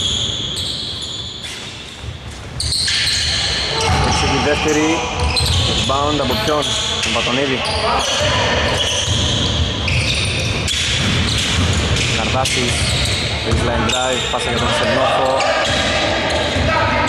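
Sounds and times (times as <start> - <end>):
players moving on court floor: 0.2 - 17.0
basketball bouncing: 2.0 - 6.2, 8.8 - 14.0
voices calling out: 2.8 - 17.0.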